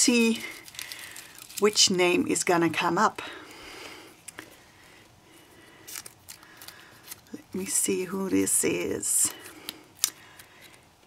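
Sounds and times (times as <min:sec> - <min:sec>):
paper rustling and crinkling: 0:00.1 - 0:02.3, 0:05.8 - 0:07.4.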